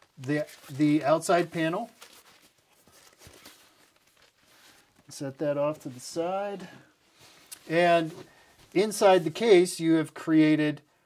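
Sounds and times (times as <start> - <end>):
faint fabric rustling: 0.0 - 9.9.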